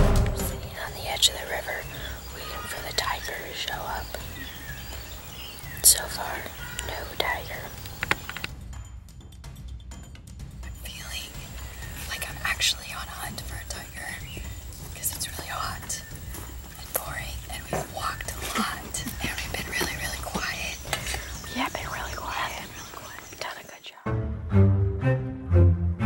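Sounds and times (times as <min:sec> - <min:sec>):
people whispering: 0:00.4 - 0:08.5, 0:10.8 - 0:24.0
small clicks and rustles: 0:07.8 - 0:08.6.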